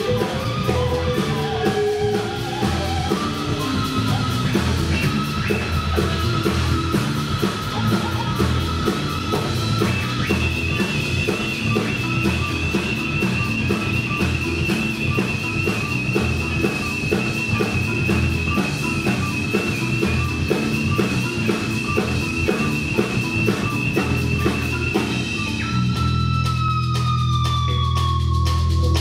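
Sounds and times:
bass: 0:00.0 - 0:29.0
drum kit beat: 0:00.0 - 0:29.0
electric guitar: 0:00.0 - 0:29.0
keyboards: 0:00.0 - 0:29.0.

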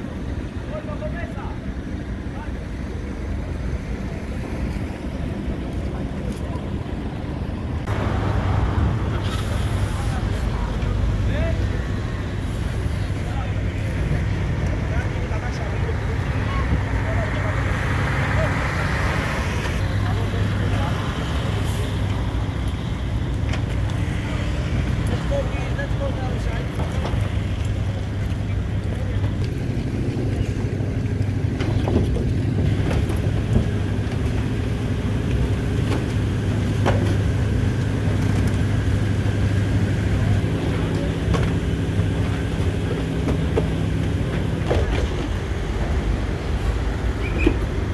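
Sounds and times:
people talking: 0:00.0 - 0:46.0
low engine drone: 0:00.0 - 0:47.9.

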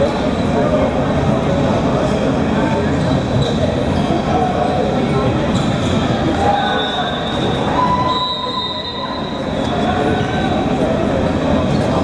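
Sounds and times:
crowd chatter in sports hall: 0:00.0 - 0:12.0.

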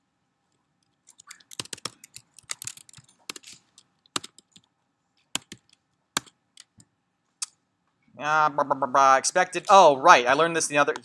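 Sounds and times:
computer keyboard typing: 0:00.9 - 0:04.7, 0:05.3 - 0:06.9.

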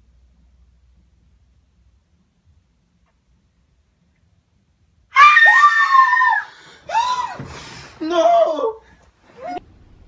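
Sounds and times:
person screaming: 0:05.2 - 0:08.8.

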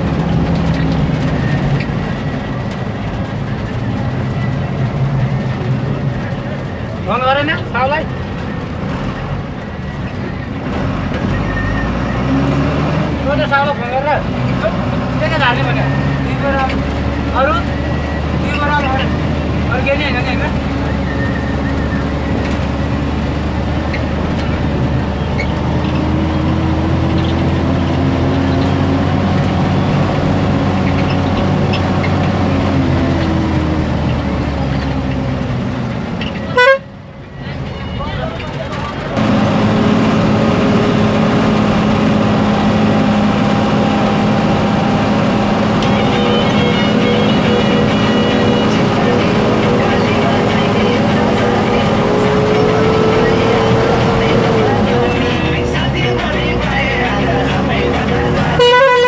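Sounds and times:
vehicle engine and road noise: 0:00.0 - 0:59.0.

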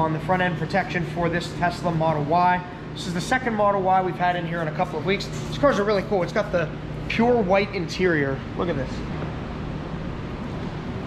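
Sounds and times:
workshop rumble and hiss: 0:00.0 - 0:11.0.

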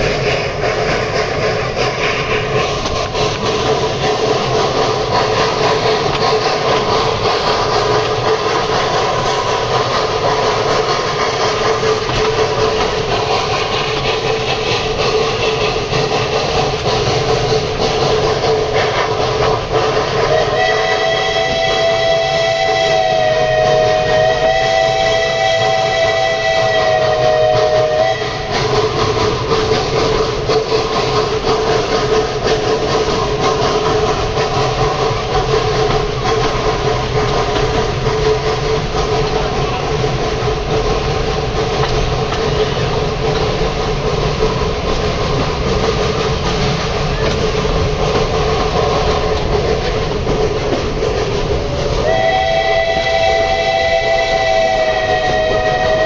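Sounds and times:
carriages rattling on track: 0:00.0 - 0:56.0
steam locomotive whistle: 0:19.8 - 0:28.8, 0:51.9 - 0:56.0.

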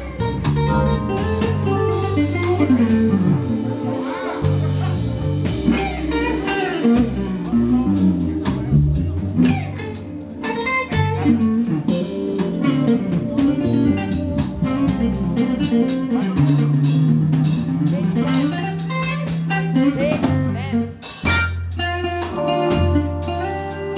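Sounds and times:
lead guitar: 0:00.0 - 0:23.9
live band playing: 0:00.0 - 0:23.9.

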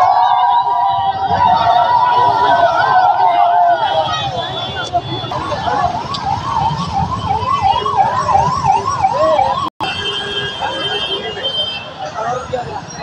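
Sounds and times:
electronic siren yelping: 0:00.0 - 0:09.7
crowd and street noise: 0:00.0 - 0:13.0.

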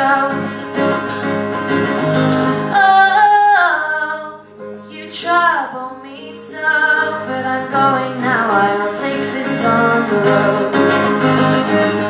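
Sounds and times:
woman singing: 0:00.0 - 0:01.0, 0:02.6 - 0:12.0
acoustic guitar: 0:00.0 - 0:12.0.

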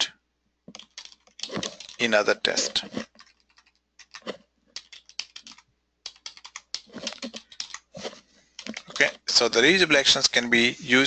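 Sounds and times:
typing on computer keyboard: 0:00.7 - 0:02.1, 0:03.0 - 0:07.9, 0:08.6 - 0:09.2.

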